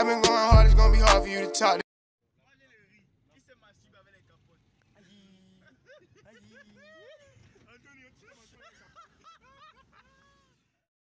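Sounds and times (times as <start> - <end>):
people talking and laughing: 4.9 - 10.8.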